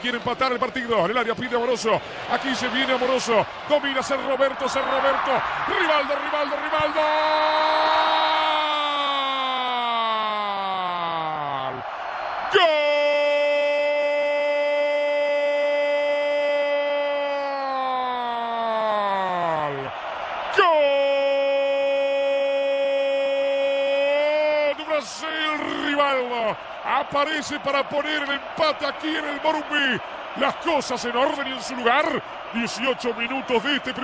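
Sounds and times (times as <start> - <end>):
commentator shouting goal cry: 0.0 - 11.8, 12.5 - 34.0.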